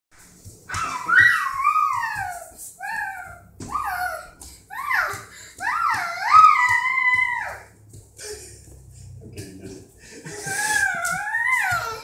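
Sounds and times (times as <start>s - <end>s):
toddler squealing: 0.7s - 7.6s, 10.7s - 12.0s.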